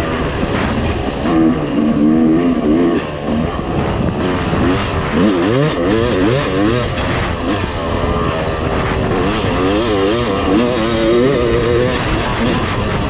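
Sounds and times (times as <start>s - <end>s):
dirt bike engine revving: 0.0s - 13.0s
wind on microphone: 0.0s - 13.0s.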